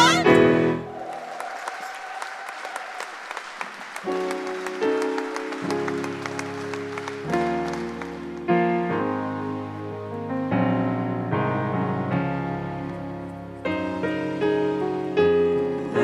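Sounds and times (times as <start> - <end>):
audience applause: 0.8 - 8.9
soft piano chords: 3.8 - 16.0.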